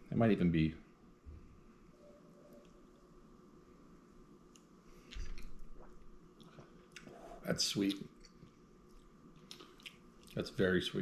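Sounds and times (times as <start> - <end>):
wet mouth clicks and lip smacks: 8.2 - 10.4.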